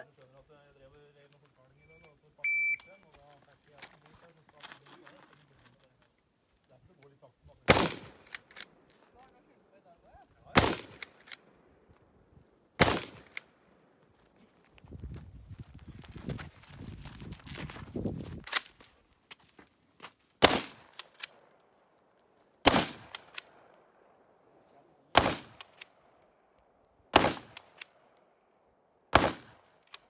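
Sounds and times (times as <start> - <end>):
shot timer beep: 1.8 - 3.0
rifle shots: 7.7 - 8.7, 10.5 - 11.4, 12.8 - 13.5, 20.4 - 21.3, 22.6 - 23.5, 25.1 - 25.9, 27.1 - 27.9, 29.1 - 29.7
soft scuffling: 14.2 - 20.2.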